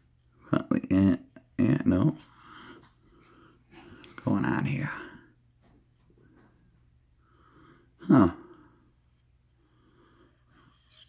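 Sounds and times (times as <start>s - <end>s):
faint breathing: 2.2s - 5.4s, 6.0s - 11.0s.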